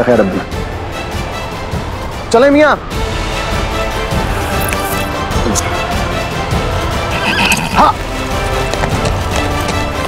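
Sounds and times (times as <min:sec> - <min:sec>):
background music: 0:00.0 - 0:10.0
horse whinnying: 0:07.1 - 0:08.0.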